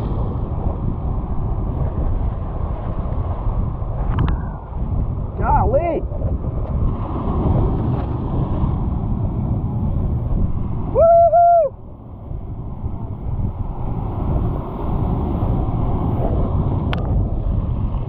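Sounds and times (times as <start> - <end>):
surf washing over rocks: 0.0 - 18.0
wind buffeting microphone: 0.0 - 18.0.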